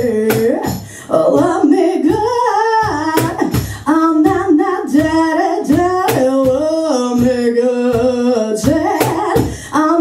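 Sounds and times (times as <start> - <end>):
low thumping beat: 0.0 - 10.0
woman singing into microphone: 0.0 - 10.0.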